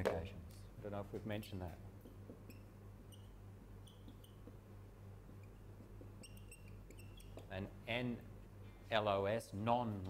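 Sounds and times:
low electrical hum: 0:00.0 - 0:10.0
faint high-pitched squeaks: 0:02.4 - 0:04.5, 0:05.4 - 0:07.5.

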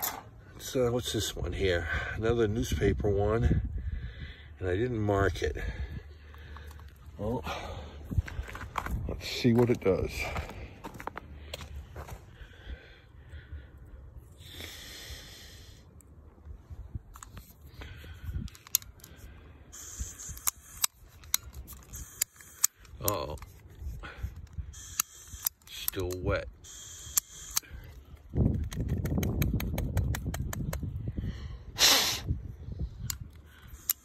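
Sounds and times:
gas hissing: 0:26.6 - 0:27.7.

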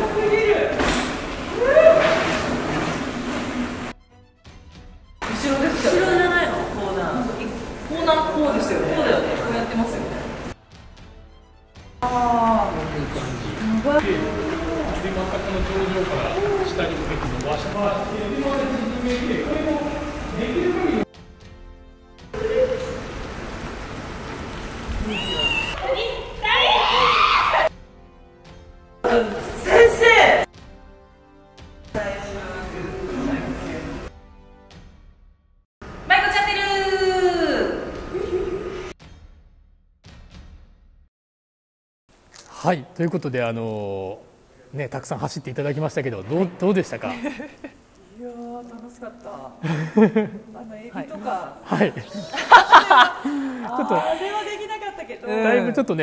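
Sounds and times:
woman screaming: 0:01.5 - 0:02.2, 0:25.0 - 0:27.7, 0:52.0 - 0:54.4
bike tyres rolling on dirt: 0:22.8 - 0:25.8.

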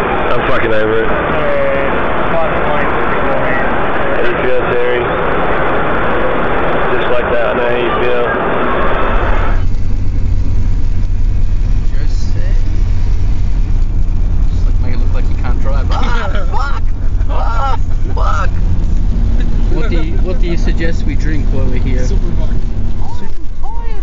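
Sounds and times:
car road and engine rumble: 0:00.0 - 0:24.0
voices talking: 0:00.0 - 0:24.0.

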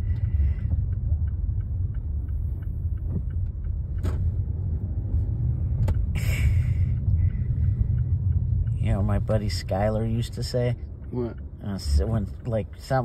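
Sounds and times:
car engine and road rumble: 0:00.0 - 0:13.0.

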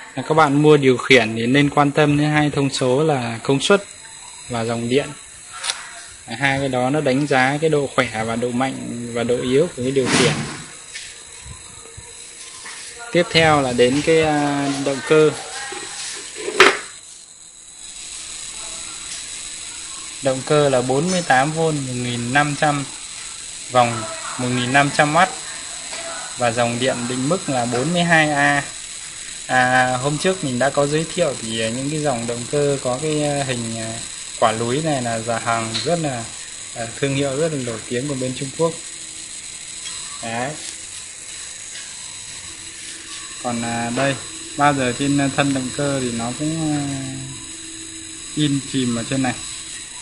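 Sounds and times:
faint high-pitched electrical tones: 0:00.0 - 0:50.0
steady background hiss: 0:00.0 - 0:50.0.

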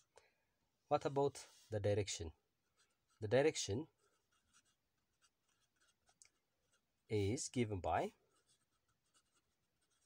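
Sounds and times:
pen scratching on paper: 0:02.5 - 0:07.4, 0:08.1 - 0:10.0.

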